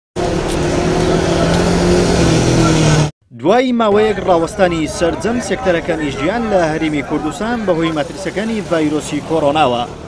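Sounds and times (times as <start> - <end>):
street traffic engines: 0.2 - 3.1, 3.8 - 10.0.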